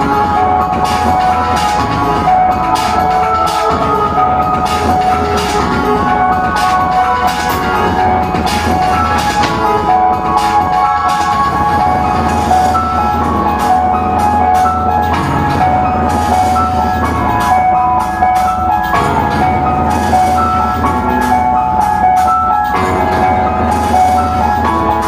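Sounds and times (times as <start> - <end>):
high melody line: 0.0 - 25.0.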